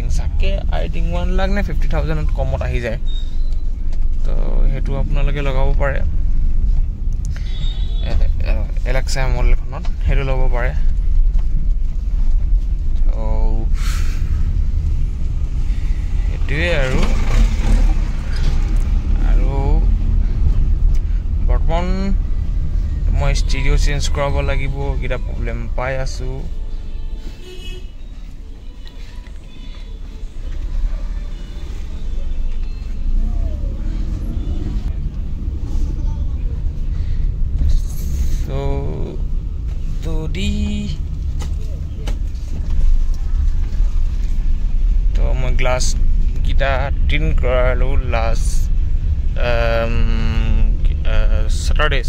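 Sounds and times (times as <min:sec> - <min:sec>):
car engine and road noise: 0:00.0 - 0:52.0.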